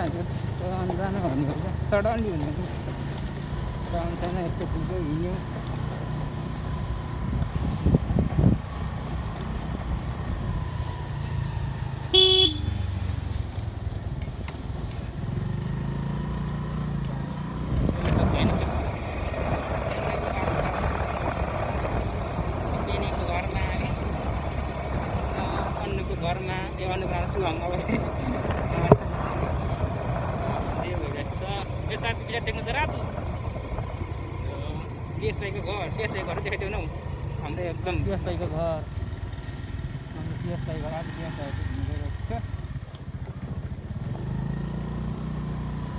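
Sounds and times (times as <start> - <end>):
motorbike engine and road rumble: 0.0 - 45.9
wind on microphone: 7.0 - 10.7, 17.6 - 25.9
vehicle horn toot: 12.1 - 12.8.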